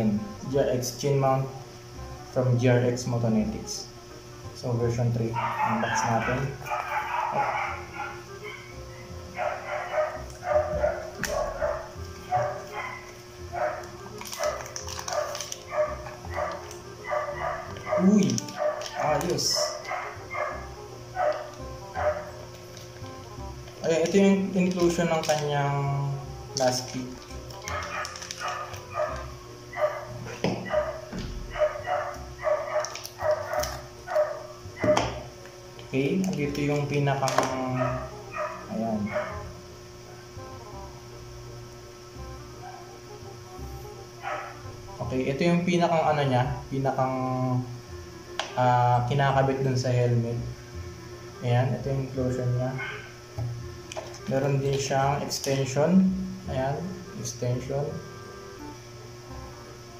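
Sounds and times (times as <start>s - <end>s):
dog barking: 5.3s - 22.4s, 27.6s - 35.2s, 37.7s - 39.5s, 42.6s - 42.9s, 44.2s - 44.6s, 52.8s - 53.2s
plastic packaging clicks: 13.8s - 15.8s, 17.7s - 20.0s, 22.4s - 23.1s, 23.7s - 25.6s, 26.5s - 29.3s, 32.7s - 33.9s, 35.8s - 37.6s.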